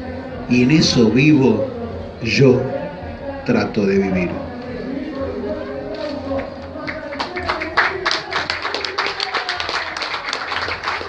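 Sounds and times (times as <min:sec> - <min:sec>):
faint voices: 0:00.0 - 0:11.0
scattered handclaps: 0:05.9 - 0:11.0.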